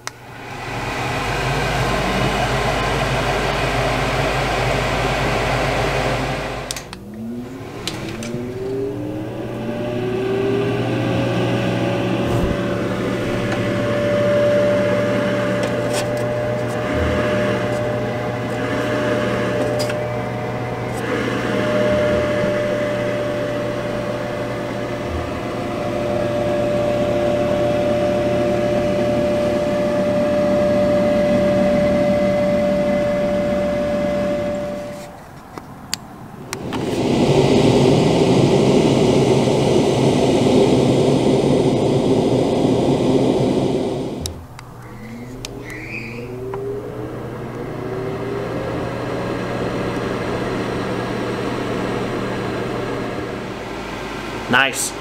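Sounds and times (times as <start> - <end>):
duct fan whining: 0.0 - 55.0.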